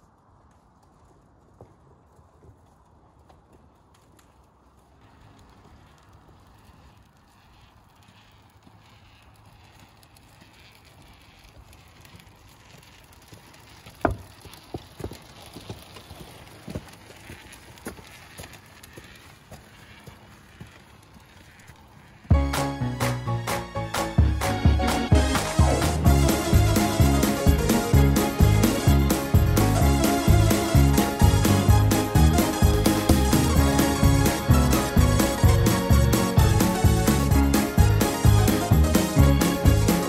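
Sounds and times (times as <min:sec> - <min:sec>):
wheelchair rolling on pavement: 0:00.0 - 0:40.0
footsteps: 0:01.1 - 0:40.0.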